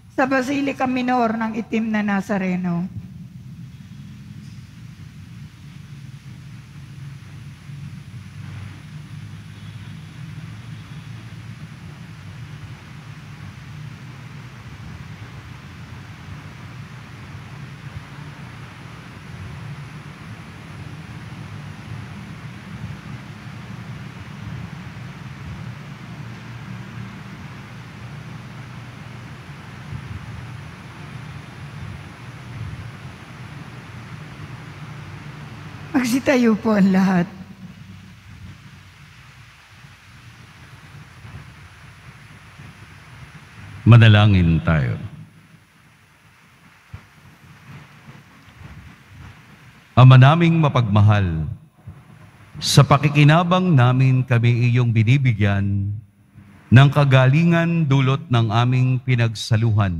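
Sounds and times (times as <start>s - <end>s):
light hiss: 0.0s - 51.0s, 51.6s - 59.5s
steady background rumble: 0.0s - 59.9s.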